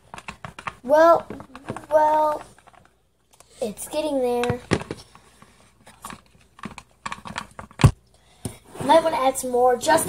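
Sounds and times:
plastic utensil scraping plastic tub: 8.7 - 10.0.

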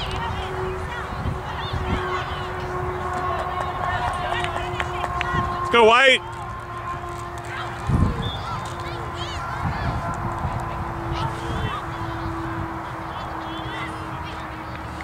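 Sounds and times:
faint distant voices: 0.0 - 15.0
wind rumble: 0.0 - 15.0.

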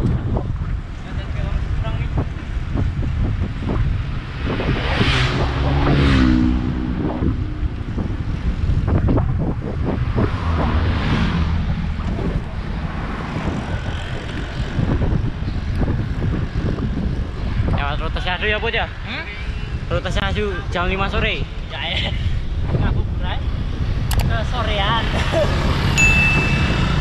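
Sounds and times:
wind rushing over microphone: 0.0 - 27.0
passing vehicle engine: 2.5 - 17.8, 23.5 - 27.0.

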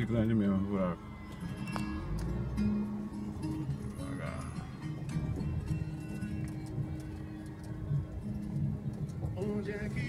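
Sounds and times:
guitar song on car stereo: 0.0 - 10.0.

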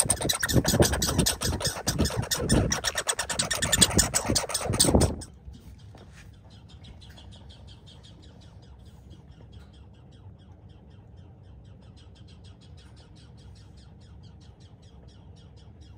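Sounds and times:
squirrel chattering: 0.0 - 5.4.

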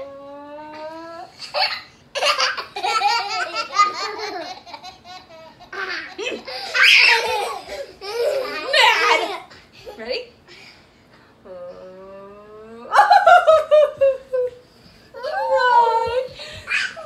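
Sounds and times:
children laughing: 1.4 - 9.5, 12.9 - 14.6, 15.2 - 17.0.

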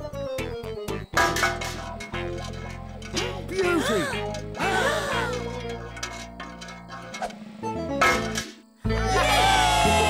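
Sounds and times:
pebble clinking in metal bucket: 1.2 - 7.3.

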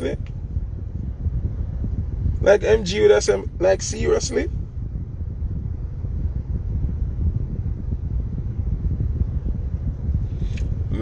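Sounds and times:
low rumble inside a car: 0.0 - 11.0
wind buffeting microphone: 0.0 - 11.0.

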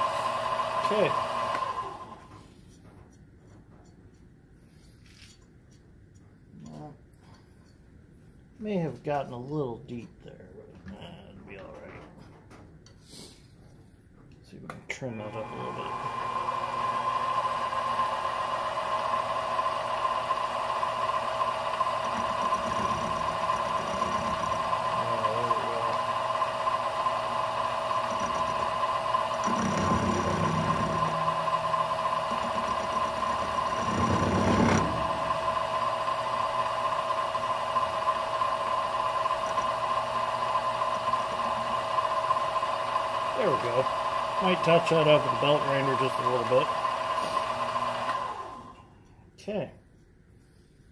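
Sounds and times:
milling machine high whine: 0.0 - 2.4, 15.0 - 48.8.

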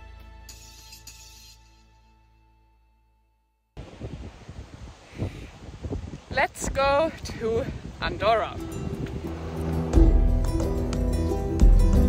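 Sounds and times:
wind buffeting microphone: 3.8 - 10.9.

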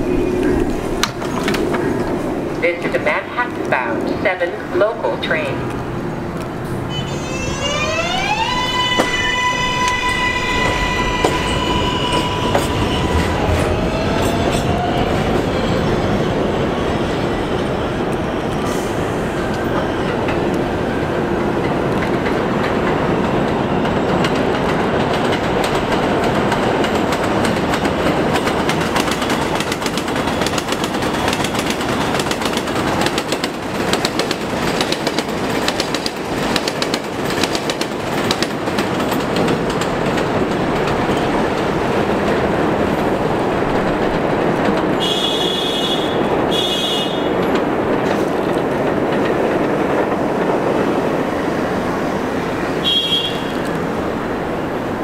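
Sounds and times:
train rumble on elevated line: 0.0 - 55.0
wheels clicking over rail joints: 21.4 - 45.4, 47.2 - 51.3.

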